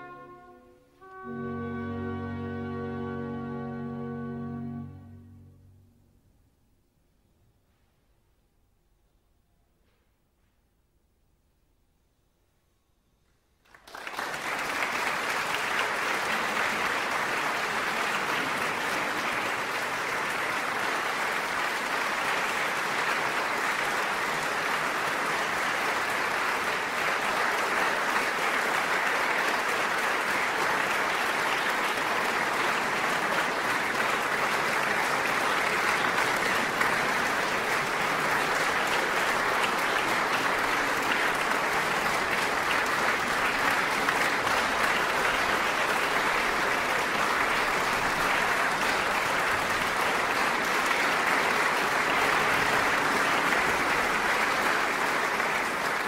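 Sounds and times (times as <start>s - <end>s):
audience applauding: 13.6s - 56.0s.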